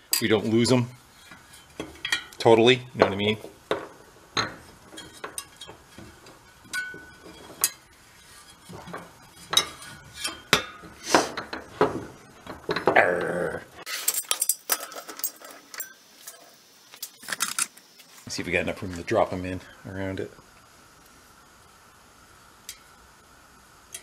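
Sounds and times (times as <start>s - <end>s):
metallic clicks and clinks: 13.9s - 17.7s.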